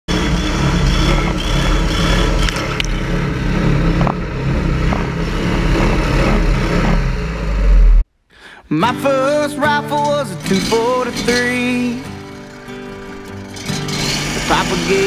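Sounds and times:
propeller churning mud and water: 0.1s - 7.9s, 12.4s - 15.0s
mud motor running: 0.1s - 8.0s, 10.5s - 15.0s.

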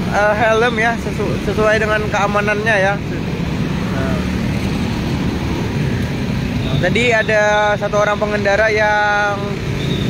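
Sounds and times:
heavy road traffic: 0.0s - 10.0s.

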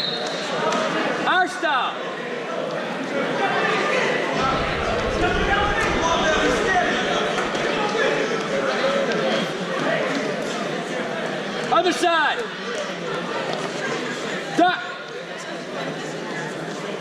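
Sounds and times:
crowd talking in reverberant hall: 0.0s - 17.0s.

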